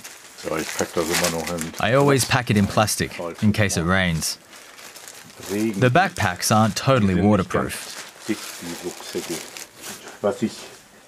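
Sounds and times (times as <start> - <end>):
plastic bags crinkling: 0.0 - 6.8, 7.4 - 10.7
faint man's voice: 5.4 - 7.9.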